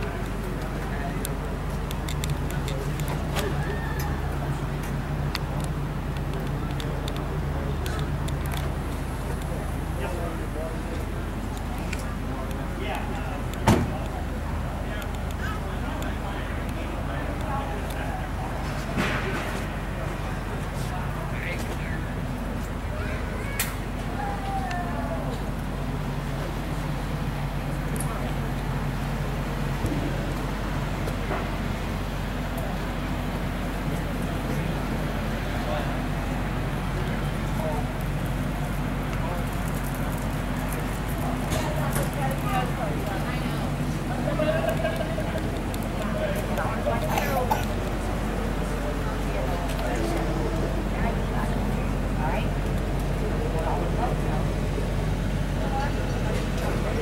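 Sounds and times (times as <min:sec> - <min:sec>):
faint people talking: 0:00.0 - 0:57.0
large engine idling hum: 0:00.0 - 0:57.0
steady low rumble: 0:00.0 - 0:57.0.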